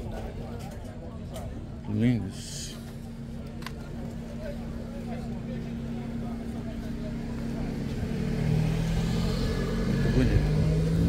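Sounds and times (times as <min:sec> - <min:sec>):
crowd chatter: 0:00.0 - 0:10.9
vehicle engine running: 0:01.5 - 0:11.0.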